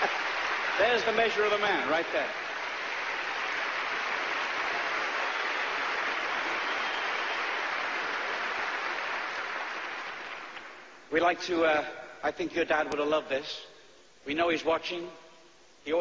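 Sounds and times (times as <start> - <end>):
large audience applauding: 0.0 - 10.9.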